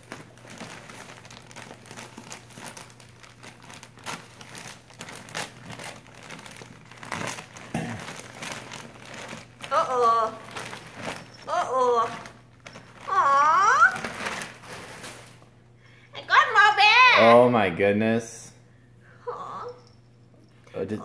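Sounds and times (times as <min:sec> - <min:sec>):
wrapping paper crinkling: 0:00.0 - 0:15.5.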